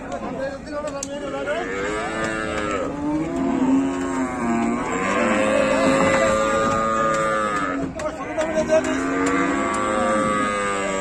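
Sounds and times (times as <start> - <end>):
cattle mooing: 1.2 - 11.0.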